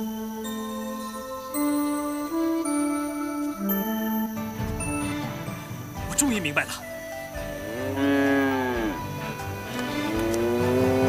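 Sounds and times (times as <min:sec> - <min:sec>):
background music: 0:00.0 - 0:11.0
bull mooing: 0:07.6 - 0:11.0.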